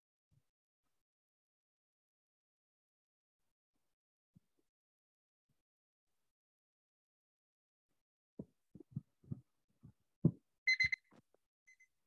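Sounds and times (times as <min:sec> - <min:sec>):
electronic timer beeping: 0:10.7 - 0:11.0.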